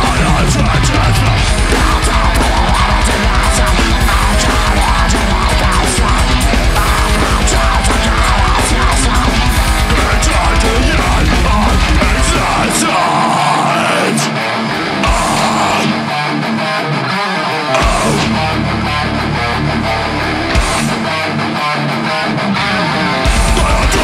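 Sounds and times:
rapid pounding drums: 0.0s - 13.6s, 15.0s - 16.0s, 17.8s - 19.2s, 20.6s - 21.2s, 23.3s - 24.0s
heavy metal band playing: 0.0s - 24.0s.

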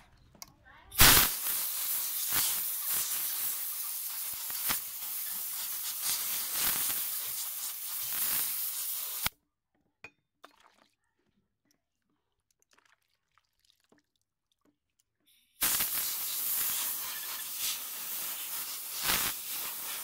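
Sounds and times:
compressed air blow gun hissing: 1.0s - 9.3s, 15.6s - 20.0s.

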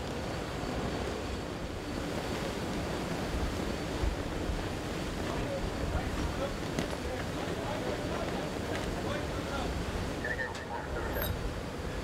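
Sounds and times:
wind and sea rushing: 0.0s - 12.0s.

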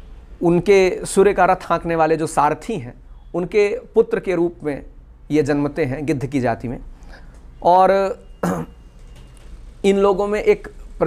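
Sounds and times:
throat clearing: 8.4s - 8.8s.

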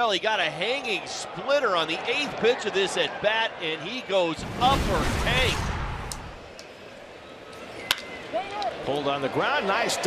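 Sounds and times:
ballpark crowd noise: 0.0s - 10.0s.

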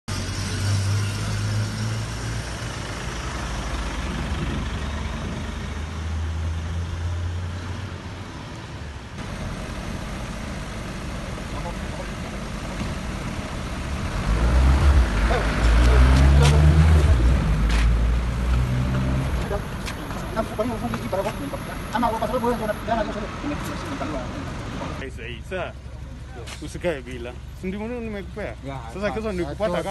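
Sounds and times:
truck engine driving past: 0.1s - 26.3s
deep engine running close by: 9.2s - 29.9s.

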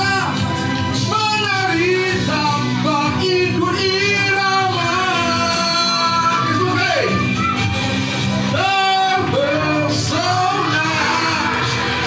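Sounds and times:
backing music: 0.0s - 12.0s
man singing into a microphone: 1.0s - 7.2s, 8.5s - 12.0s.

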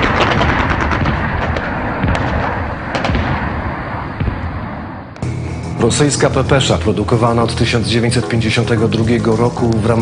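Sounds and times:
gunshots: 0.0s - 4.8s
continuous noisy din: 0.0s - 6.9s.

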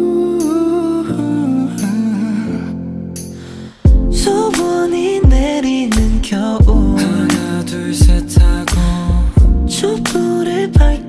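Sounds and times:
man singing a slow pop ballad: 0.0s - 11.0s.

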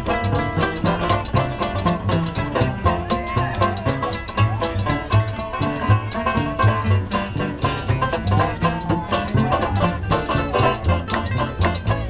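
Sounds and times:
banjo and guitar strumming: 0.0s - 12.0s
upright bass notes: 0.0s - 12.0s
washboard beat: 0.0s - 12.0s.

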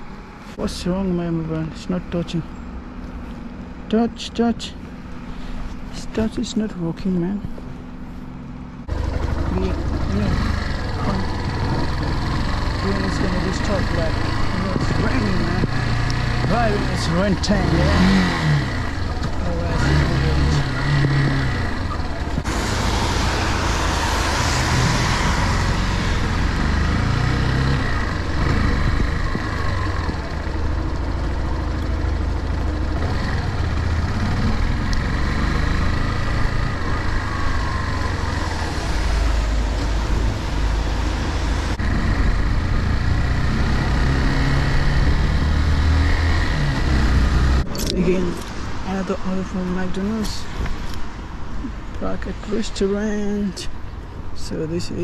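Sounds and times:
motorcycle engine running: 8.8s - 22.7s, 25.4s - 39.2s, 41.8s - 48.0s
tyre hiss on wet road: 22.5s - 25.5s.

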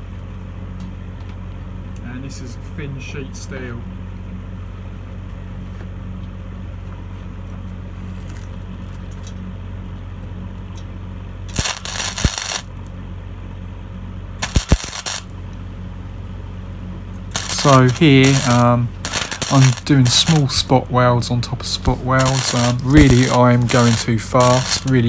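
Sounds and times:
steady low hum: 0.0s - 25.0s
welding arc crackling: 11.5s - 12.9s, 14.4s - 15.4s, 17.1s - 25.0s.

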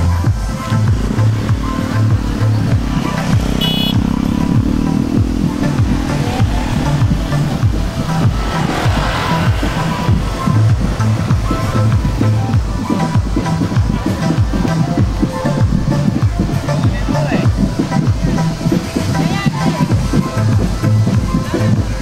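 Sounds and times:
vehicle engine: 0.0s - 21.8s
music with heavy bass beat: 0.0s - 22.0s.

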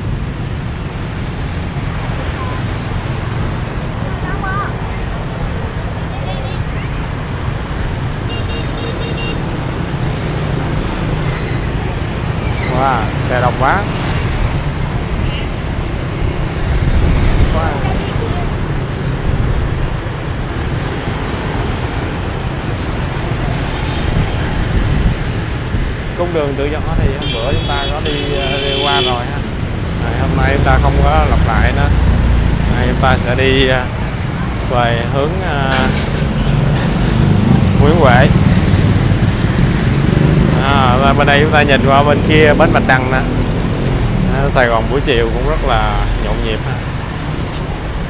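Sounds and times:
low rumble of engines and tyres: 0.0s - 48.0s
motorbikes and cars passing: 0.0s - 48.0s.

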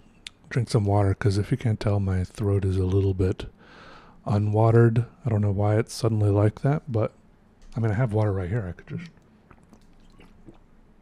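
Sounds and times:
mouth clicks: 8.9s - 10.7s
man sipping and swallowing water: 8.9s - 11.0s.

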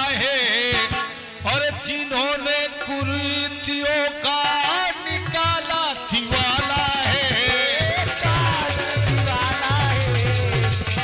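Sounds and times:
hand drum beat: 6.6s - 11.0s.

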